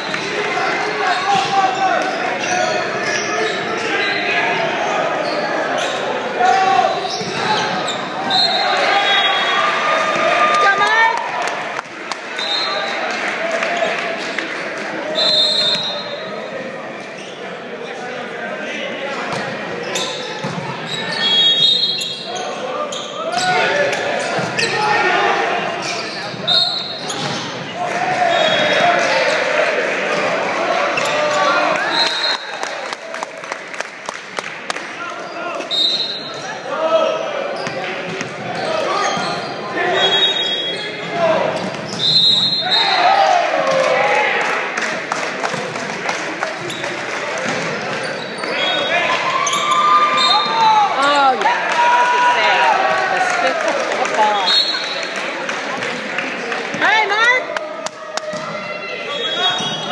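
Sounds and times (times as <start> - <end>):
people talking and shouting: 0.0 - 59.9
sneakers squeaking on floor: 1.0 - 9.6, 15.1 - 16.3, 17.0 - 18.0, 19.2 - 25.0, 25.7 - 29.5, 30.8 - 32.4, 35.2 - 36.6, 37.4 - 43.0, 46.6 - 51.2, 54.2 - 55.2, 58.2 - 59.9.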